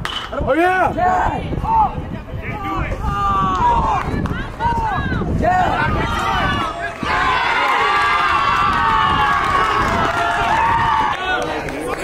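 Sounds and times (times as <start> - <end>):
players yelling and cheering: 0.3 - 12.0.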